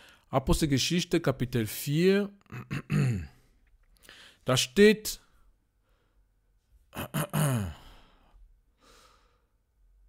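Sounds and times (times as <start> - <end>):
soft breath: 3.9 - 4.4, 7.8 - 9.6
man sighing: 6.9 - 9.4.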